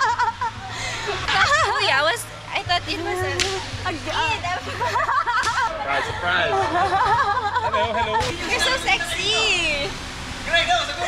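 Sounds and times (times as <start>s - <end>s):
people talking: 0.8s - 11.0s
sharp cracks: 3.4s - 3.9s.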